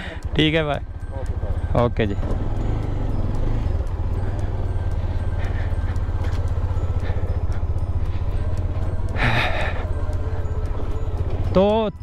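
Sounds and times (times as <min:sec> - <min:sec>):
motorcycle engine low rumble: 0:00.0 - 0:12.0.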